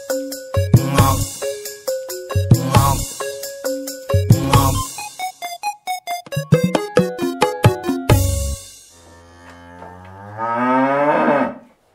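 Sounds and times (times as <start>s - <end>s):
cow-like moo: 8.9s - 11.7s.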